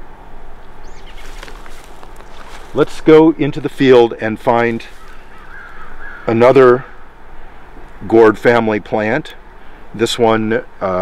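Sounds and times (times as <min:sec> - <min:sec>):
low rumble and hiss: 0:00.0 - 0:11.0
bird chirp: 0:00.6 - 0:02.5, 0:04.8 - 0:07.2.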